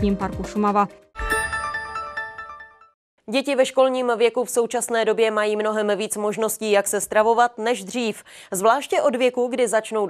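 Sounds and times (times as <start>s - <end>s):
electronic chime chord: 1.2s - 3.0s.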